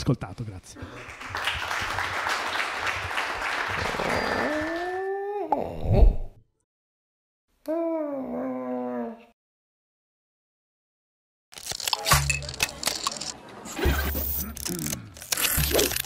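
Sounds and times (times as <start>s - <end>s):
audience applause: 0.8s - 5.0s.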